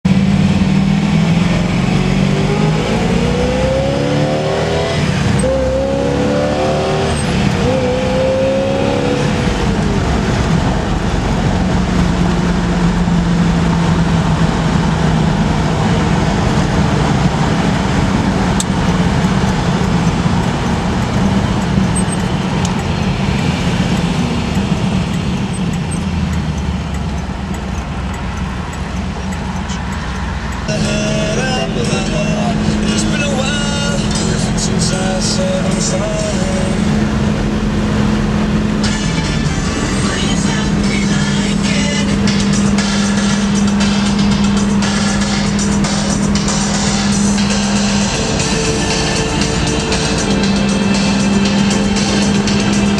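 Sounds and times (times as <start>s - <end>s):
car engine accelerating: 0.0s - 52.9s
road noise: 0.0s - 52.9s.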